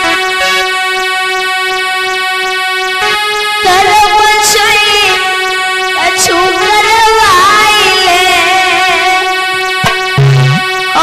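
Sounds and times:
sustained keyboard chord: 0.0 - 11.0.

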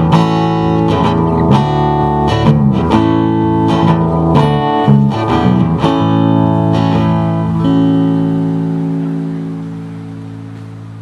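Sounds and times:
guitar chord ringing: 0.0 - 11.0.

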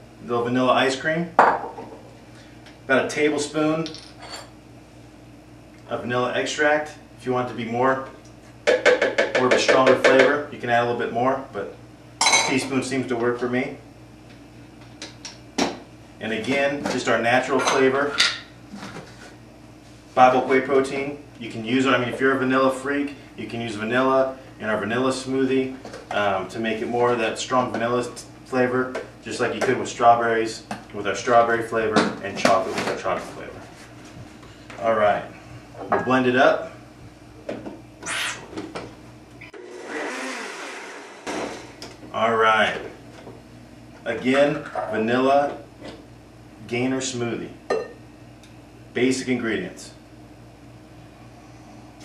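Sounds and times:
countertop blender running: 39.5 - 42.0.

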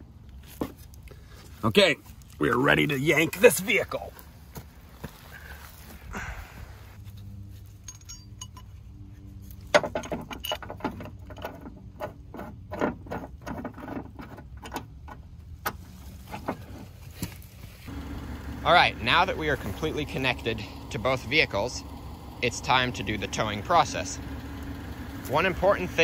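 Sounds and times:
metal shackle clinking and rattling: 7.2 - 8.9, 9.5 - 14.8.

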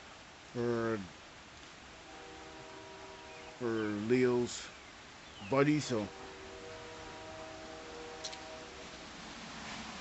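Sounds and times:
steady rain hiss: 0.0 - 10.0.

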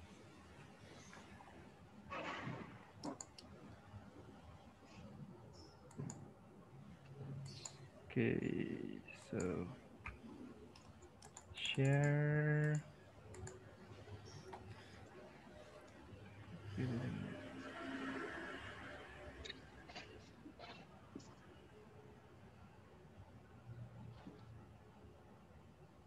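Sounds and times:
steady hum: 0.0 - 20.3
keyboard typing: 3.0 - 3.5, 5.6 - 6.4, 7.1 - 7.8, 9.2 - 16.0
mouse clicks: 5.6 - 6.2, 7.4 - 7.8.

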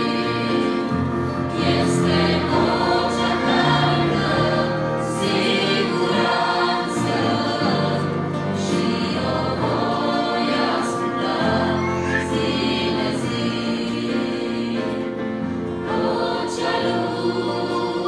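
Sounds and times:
women's group singing a hymn: 0.0 - 18.0.

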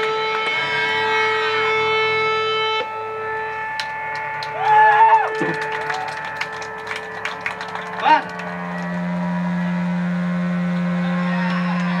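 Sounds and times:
electric guitar droning note: 0.0 - 12.0.

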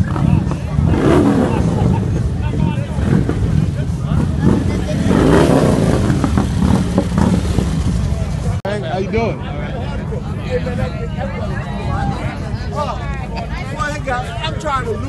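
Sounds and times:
crowd chatter: 0.0 - 15.0
motorcycle engines rumbling: 0.0 - 15.0.

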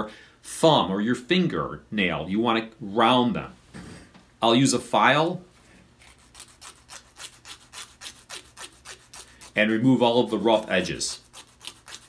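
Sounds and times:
emery board filing toenail: 6.1 - 12.0.

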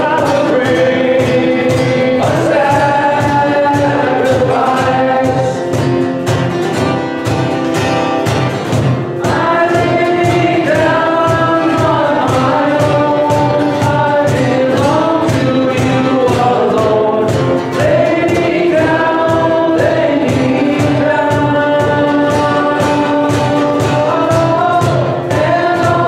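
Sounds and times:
many voices singing together: 0.0 - 6.9, 8.6 - 26.0
worship band playing: 0.0 - 26.0.

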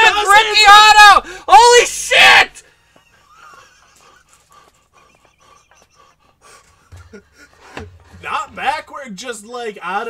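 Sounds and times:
stifled laughter: 2.8 - 8.1
person laughing: 3.0 - 8.2
breathy exhalations: 3.8 - 8.2.

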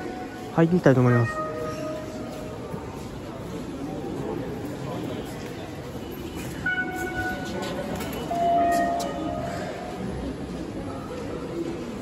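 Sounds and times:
murmur of crowd: 0.0 - 12.0.

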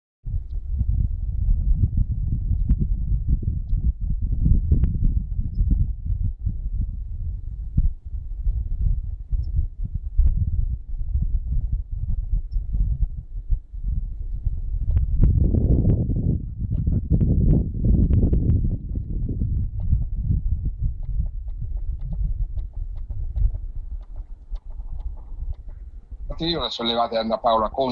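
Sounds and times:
wind buffeting microphone: 0.3 - 27.9.

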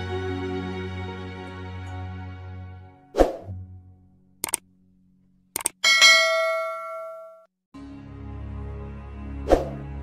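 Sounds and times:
background music: 0.0 - 4.6, 7.8 - 10.0
pop with falling swish: 3.2 - 3.5, 9.5 - 9.8.

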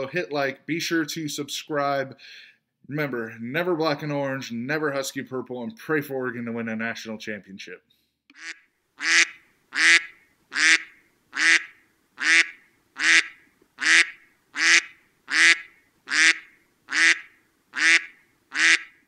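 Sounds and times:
duck quacking: 8.3 - 19.0.

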